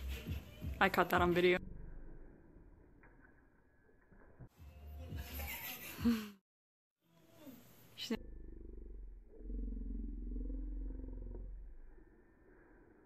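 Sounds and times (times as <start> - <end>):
person laughing: 5.2 - 6.4
low pulsing rumble: 8.2 - 12.2.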